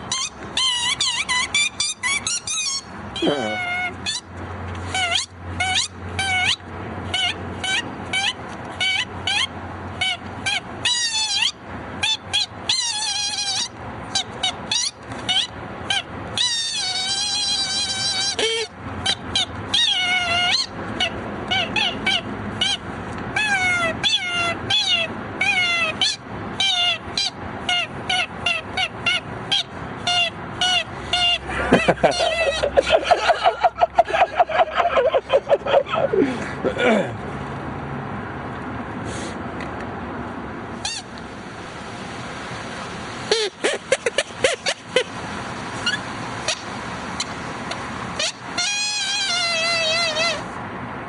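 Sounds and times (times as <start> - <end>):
high-pitched sliding squeaks: 0.0 - 31.4, 45.8 - 46.6, 48.2 - 50.6
wavering squeals: 0.0 - 36.0, 45.8 - 47.3, 48.2 - 50.6.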